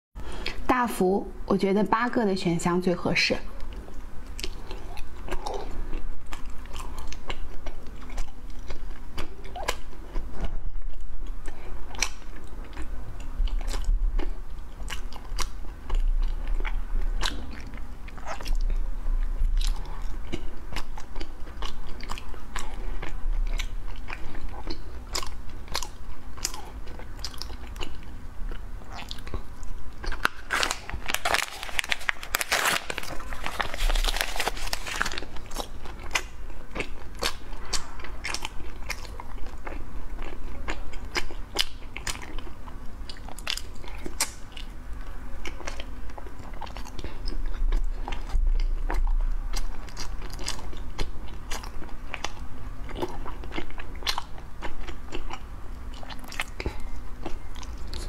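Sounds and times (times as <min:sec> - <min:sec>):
chewing with lip smacks: 0:03.6 - 0:58.0
plastic packet crinkling: 0:30.1 - 0:35.6.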